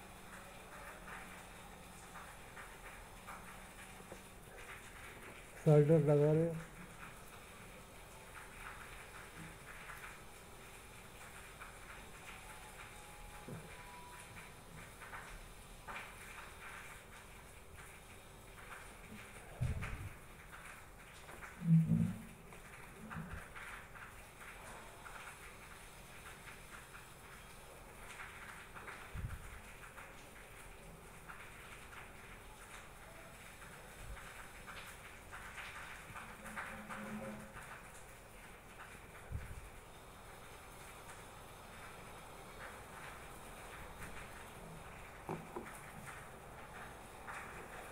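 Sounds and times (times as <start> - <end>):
soft knocks: 45.3 - 45.8.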